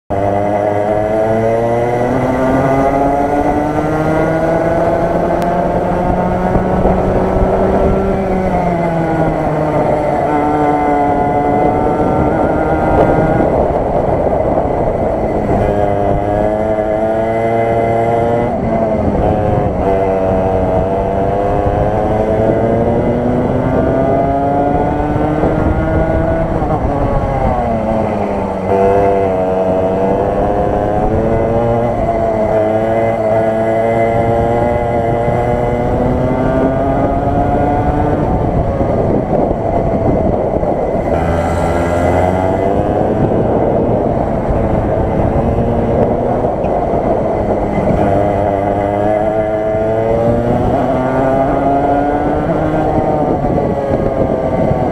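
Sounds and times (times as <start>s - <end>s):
kart engine revving: 0.1s - 54.9s.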